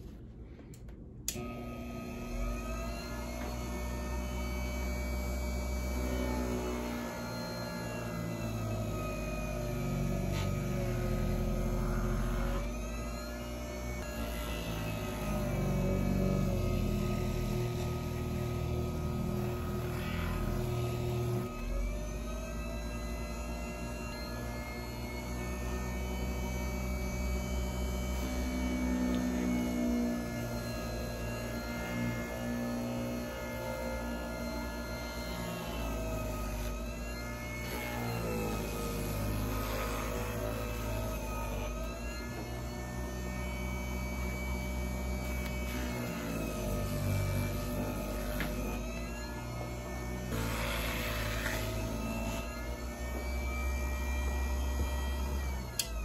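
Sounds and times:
burnishing machine motor whining: 1.3 - 56.0.

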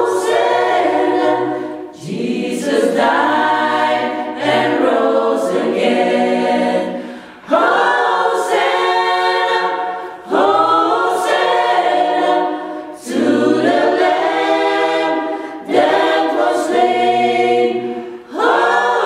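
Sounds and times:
choir singing a cappella: 0.0 - 19.0.

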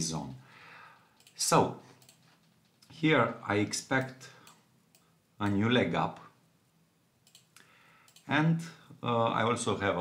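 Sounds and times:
faint computer mouse clicks: 7.2 - 8.3.

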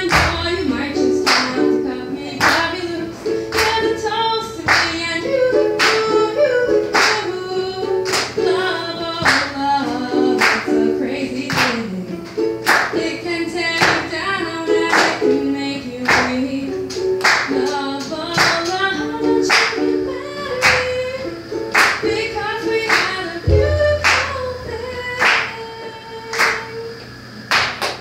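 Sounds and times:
ukulele strumming: 0.0 - 26.9
woman singing: 0.0 - 27.0.

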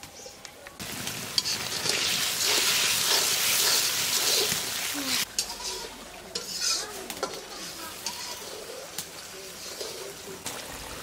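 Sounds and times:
sauce sizzling: 0.8 - 11.0
spatula scraping wok: 1.3 - 10.4.

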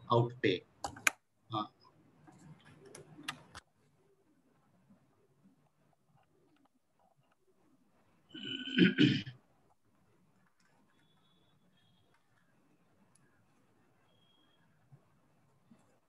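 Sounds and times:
person clearing throat: 8.4 - 9.4.

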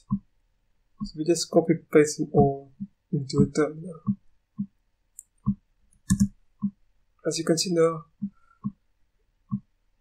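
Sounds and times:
mouse and keyboard clicks: 5.2 - 6.7.

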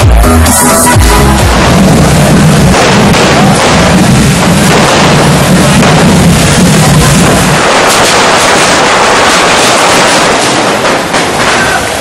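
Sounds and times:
fire fountains hissing and crackling: 0.7 - 12.0.

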